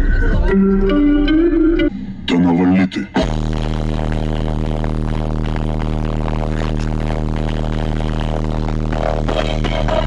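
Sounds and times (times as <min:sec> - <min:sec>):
distorted deep bass note: 0:00.0 - 0:10.0.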